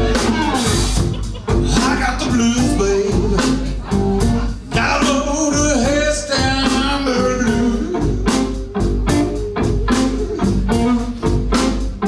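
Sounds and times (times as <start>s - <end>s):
drum kit: 0.0s - 12.0s
electric guitars: 0.0s - 12.0s
man singing: 1.4s - 11.6s.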